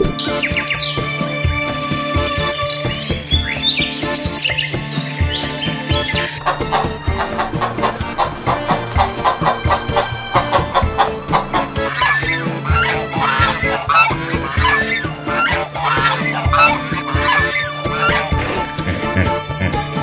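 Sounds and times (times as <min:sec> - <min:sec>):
geese honking: 0:00.0 - 0:20.0
music with steady beat: 0:00.0 - 0:20.0.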